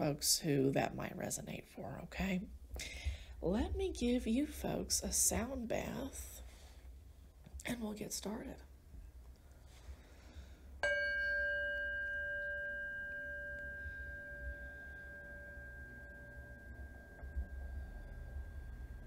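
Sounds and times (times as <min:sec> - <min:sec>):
singing bowl ringing overtones: 0:10.8 - 0:19.0
singing bowl struck with mallet: 0:10.8 - 0:19.0.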